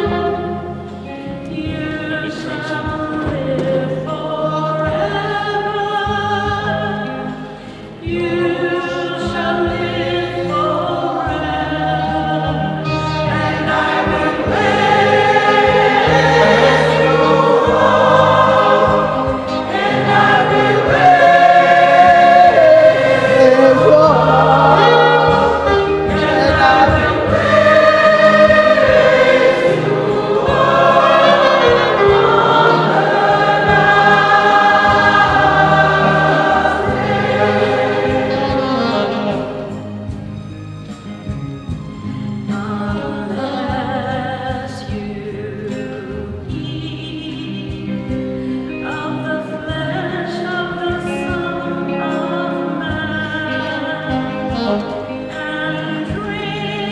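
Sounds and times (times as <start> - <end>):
choir singing a hymn: 0.0 - 40.2, 42.5 - 56.9
instrumental accompaniment: 0.0 - 56.9.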